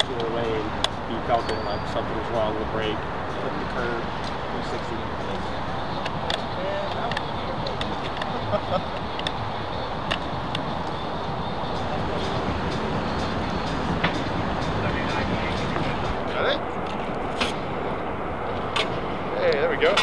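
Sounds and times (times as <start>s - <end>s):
faint voices: 0.0s - 18.2s.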